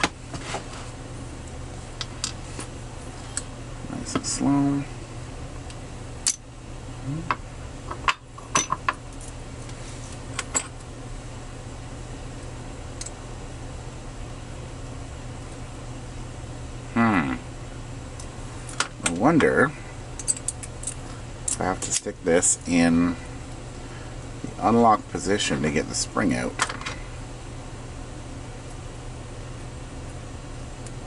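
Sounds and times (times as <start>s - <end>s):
steady low hum: 0.0s - 31.0s.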